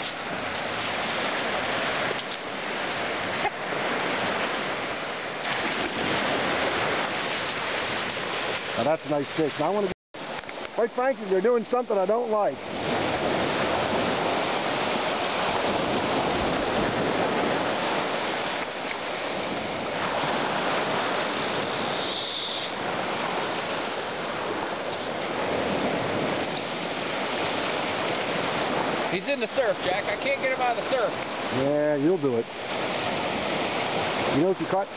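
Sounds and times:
waves washing onto beach: 0:00.0 - 0:34.9.

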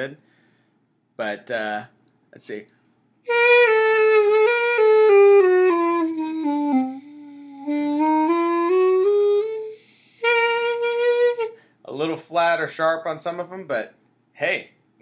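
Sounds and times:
carrot clarinet playing a scale: 0:03.3 - 0:11.6.

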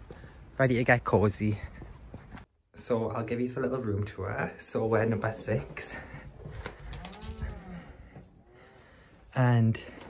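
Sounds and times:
door hinge creaking: 0:06.6 - 0:08.2.

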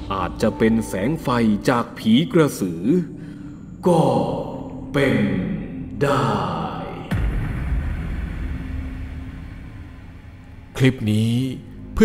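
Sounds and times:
deep low rumble: 0:07.0 - 0:11.0.

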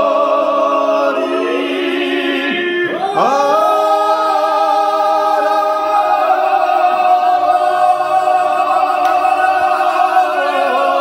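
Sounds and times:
men singing unaccompanied: 0:00.0 - 0:11.0.

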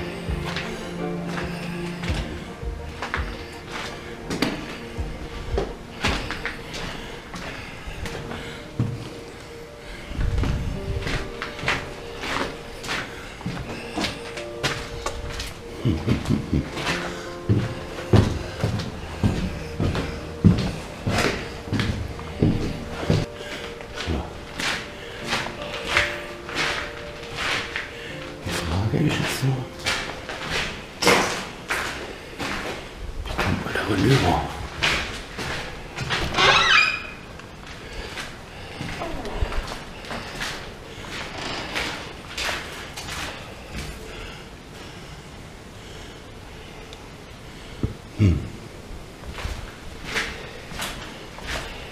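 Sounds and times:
footsteps on wooden stairs: 0:00.0 - 0:44.4, 0:49.2 - 0:51.9
quiet background music: 0:00.0 - 0:51.9
man humming hmm: 0:15.7 - 0:16.9, 0:48.1 - 0:48.7.

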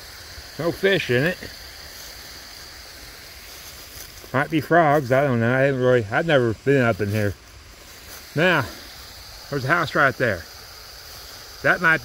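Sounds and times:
creek running over rocks: 0:00.0 - 0:12.0.

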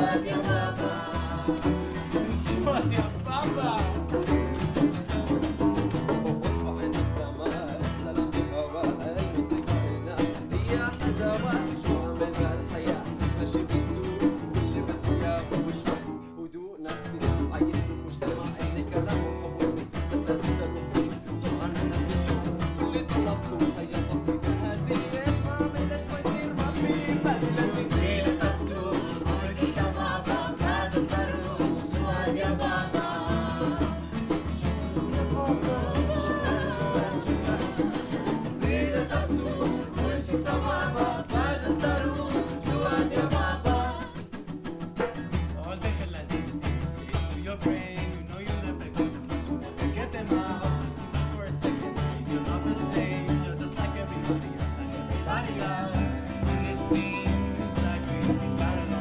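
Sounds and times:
people singing: 0:00.0 - 0:16.1, 0:17.0 - 0:44.6, 0:45.6 - 0:59.0
hand drum beat: 0:00.0 - 0:16.2, 0:16.9 - 0:59.0
acoustic guitar strumming: 0:00.0 - 0:59.0.

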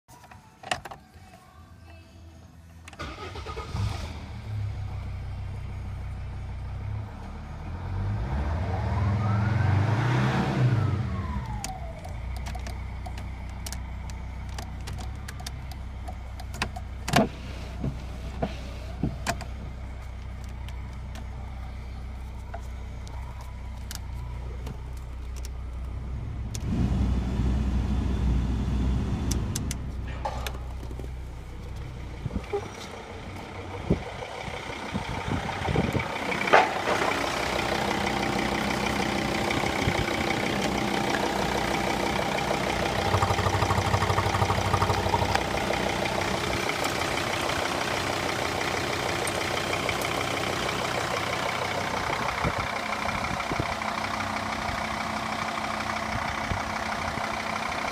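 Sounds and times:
car engine starting and idling: 0:02.6 - 0:57.9
engine revving: 0:06.9 - 0:12.1, 0:26.2 - 0:30.4, 0:32.2 - 0:54.7.

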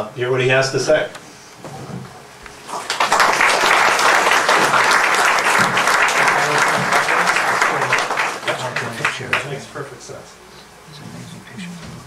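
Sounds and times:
men murmuring: 0:04.6 - 0:12.0.

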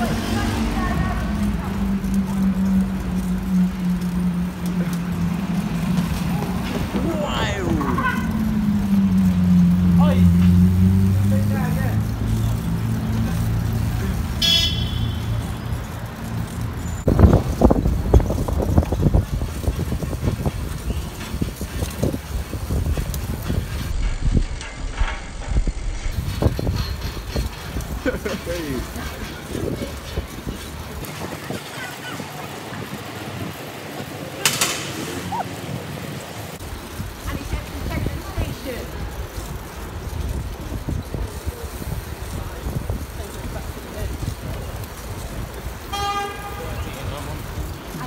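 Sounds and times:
motor vehicle engine droning: 0:00.0 - 0:48.0
high-pitched squeal: 0:00.1 - 0:11.4.

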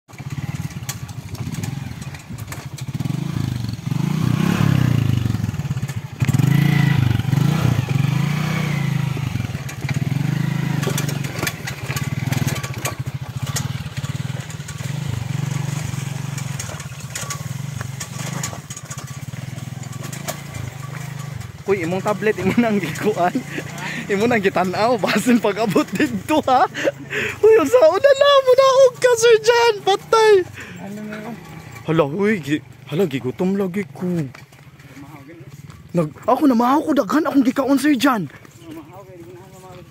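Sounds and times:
small motorcycle engine revving: 0:00.1 - 0:35.0.

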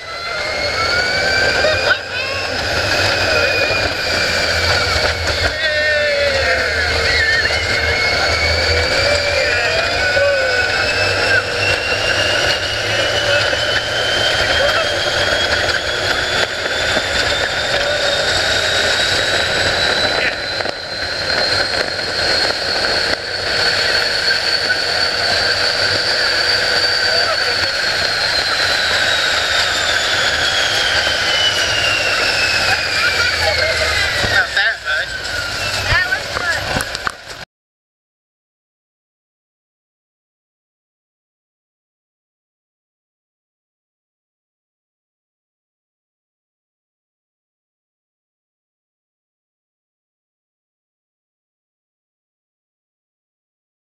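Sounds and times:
motor whine: 0:00.0 - 0:37.4
wind rushing over microphone: 0:00.0 - 0:37.4.

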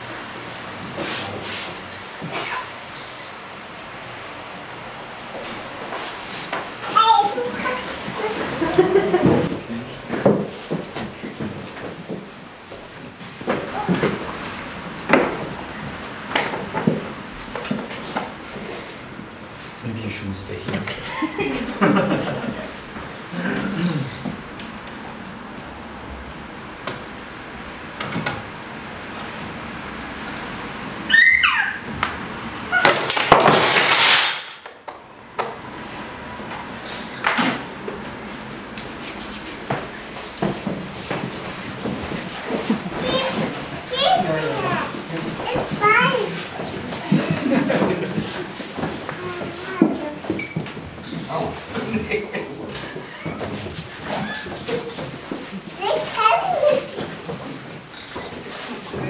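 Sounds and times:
wooden frame rattling and scraping: 0:39.0 - 0:58.8.

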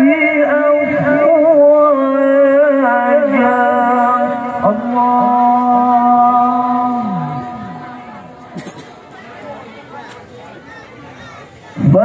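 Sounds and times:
man chanting recitation over speakers: 0:00.0 - 0:08.4, 0:11.8 - 0:12.0.

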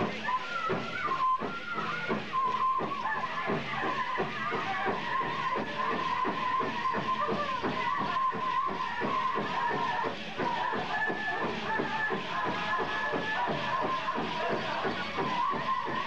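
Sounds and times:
high-pitched voices singing: 0:00.0 - 0:16.0
steady drumbeat: 0:00.0 - 0:16.0.

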